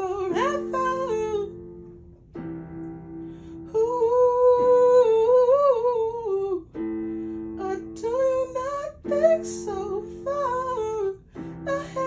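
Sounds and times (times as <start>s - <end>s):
electric keyboard chords: 0.0s - 12.0s.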